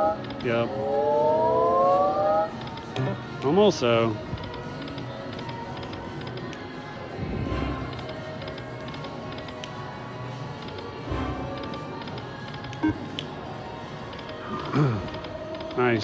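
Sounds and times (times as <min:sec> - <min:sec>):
slot machine music and effects: 0:00.0 - 0:02.6, 0:11.0 - 0:12.0.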